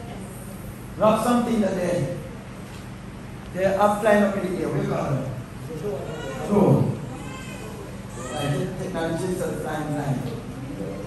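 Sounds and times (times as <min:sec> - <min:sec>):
man exclaiming through microphone: 0:08.1 - 0:08.9.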